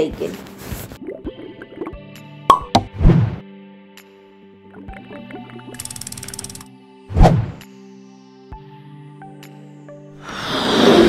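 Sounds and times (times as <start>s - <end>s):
background music with held tones: 0.0s - 10.4s
pop sound effects: 2.5s - 3.4s.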